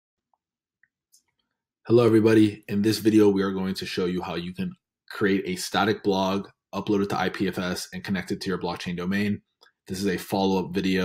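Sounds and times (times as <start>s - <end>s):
person speaking: 1.9s - 11.0s.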